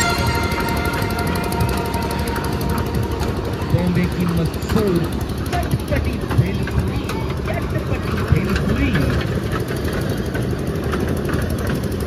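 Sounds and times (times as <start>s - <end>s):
people's voices: 0.0s - 9.5s
engine humming: 0.0s - 12.0s.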